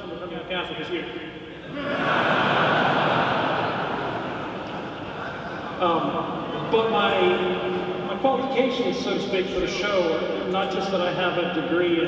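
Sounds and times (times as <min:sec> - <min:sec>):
audience laughing: 0:01.6 - 0:08.1.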